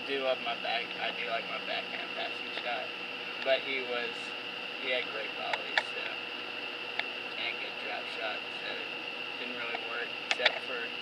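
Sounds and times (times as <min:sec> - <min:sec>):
steady high-pitched whine: 0:00.0 - 0:11.0
sharp clicks: 0:05.5 - 0:06.2, 0:09.7 - 0:10.7.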